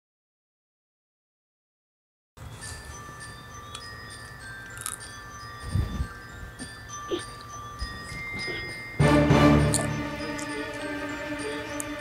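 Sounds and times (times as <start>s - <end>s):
chime-like tinkling: 2.4s - 12.0s
held bell tones: 2.4s - 12.0s.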